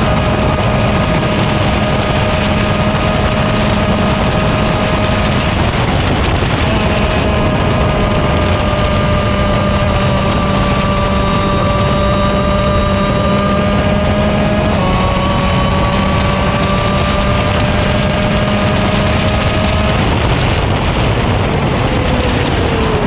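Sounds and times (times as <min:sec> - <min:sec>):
kart engine at high revs: 0:00.0 - 0:23.0
wind and tyre noise: 0:00.0 - 0:23.0.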